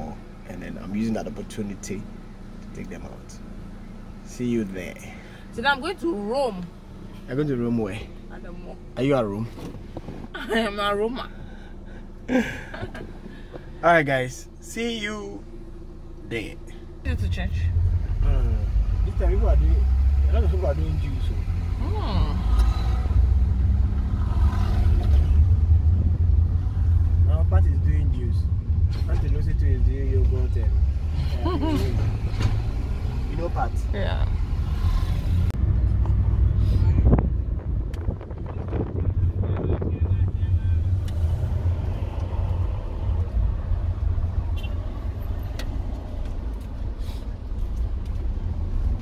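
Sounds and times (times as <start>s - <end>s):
car engine rumble and road noise: 0.0s - 49.0s.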